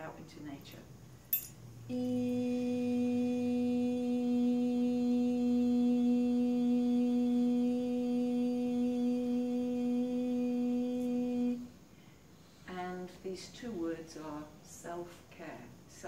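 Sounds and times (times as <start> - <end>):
person humming a steady note: 1.8 - 11.7.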